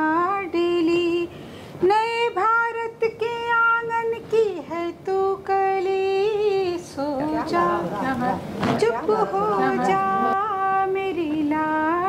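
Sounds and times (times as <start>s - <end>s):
woman singing a lullaby: 0.0s - 7.5s, 8.8s - 12.0s.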